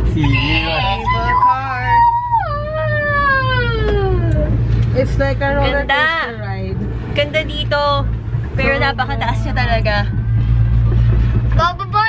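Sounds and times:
steady low hum: 0.0 - 12.0
high wordless wail: 0.2 - 4.3.

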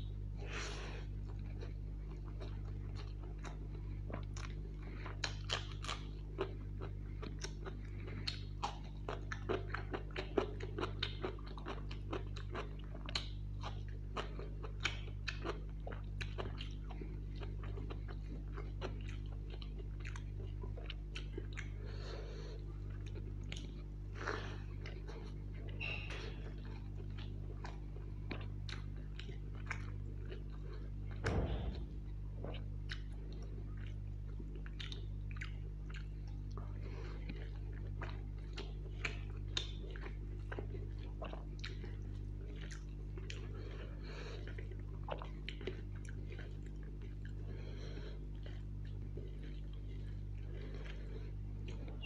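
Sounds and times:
steady low hum: 0.0 - 52.0
chewing with wet mouth clicks: 1.0 - 52.0.

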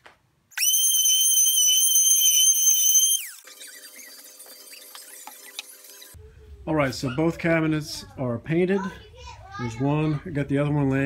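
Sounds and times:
high-pitched power tool motor whine: 0.6 - 5.7.

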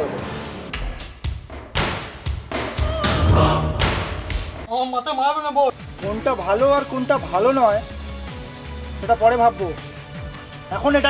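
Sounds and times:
music: 0.0 - 11.0.

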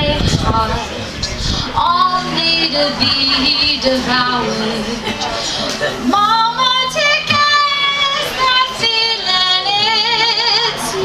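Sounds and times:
acoustic guitar: 0.0 - 11.0
woman singing folk song: 0.0 - 11.0.

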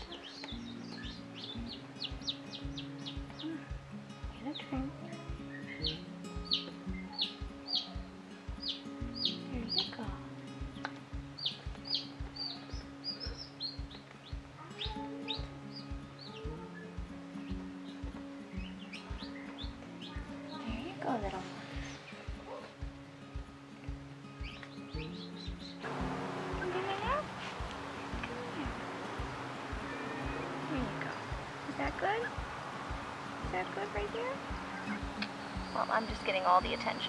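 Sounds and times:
chicks peeping: 0.0 - 3.7, 5.5 - 10.0, 10.9 - 22.7, 24.4 - 37.0
background music with steady beat: 0.0 - 37.0.

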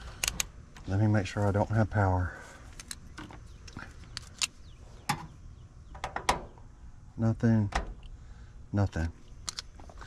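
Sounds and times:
test probes clicking on metal terminals: 2.8 - 5.2, 9.0 - 9.8.

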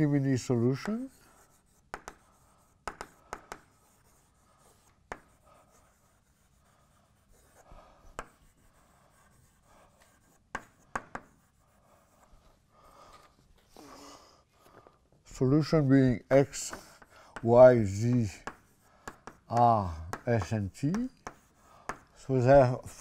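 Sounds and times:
chalk tapping on board: 0.0 - 12.3, 16.4 - 22.7
chalk scratching on blackboard: 0.0 - 13.1, 16.3 - 23.0.

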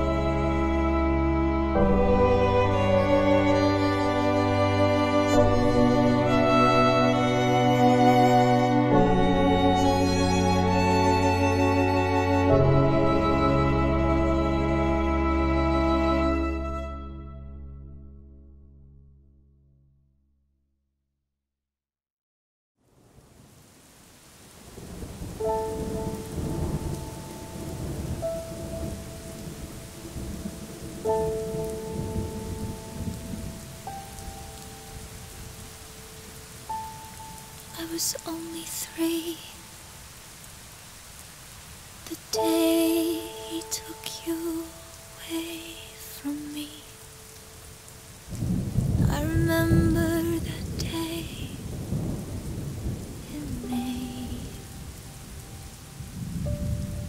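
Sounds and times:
rain: 0.0 - 17.2, 22.8 - 57.0
low rumbling thunder: 24.6 - 33.8, 48.2 - 55.4, 56.0 - 57.0.

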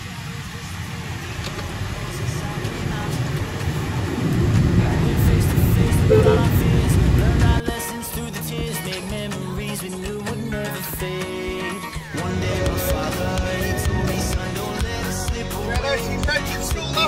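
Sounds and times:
car road and engine rumble: 0.0 - 7.7
music: 1.4 - 17.0.

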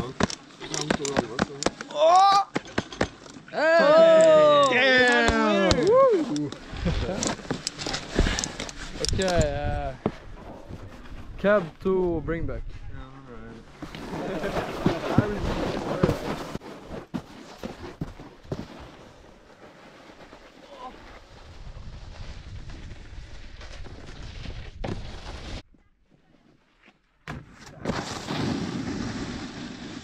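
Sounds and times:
snowboard scraping over snow: 13.4 - 25.6, 27.9 - 30.0.

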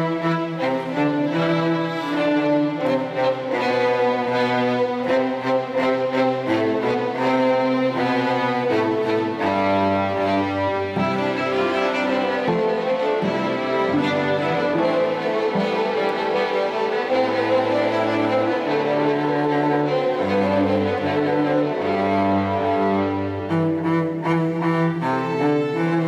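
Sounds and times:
string orchestra sustained bowed notes: 0.0 - 26.0.

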